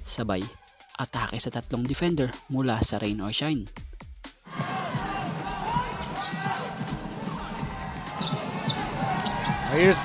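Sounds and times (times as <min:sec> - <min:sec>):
arena crowd noise: 0:04.5 - 0:10.0
sneakers squeaking on court: 0:08.0 - 0:10.0.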